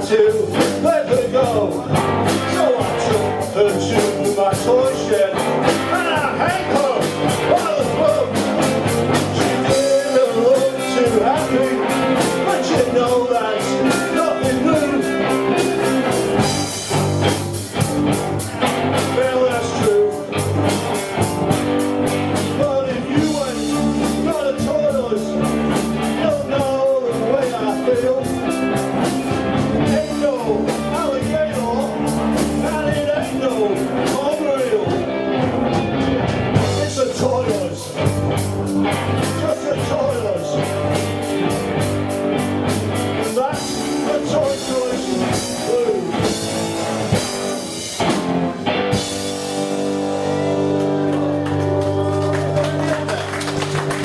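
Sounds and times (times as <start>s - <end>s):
live rock band playing blues: 0.0s - 54.0s.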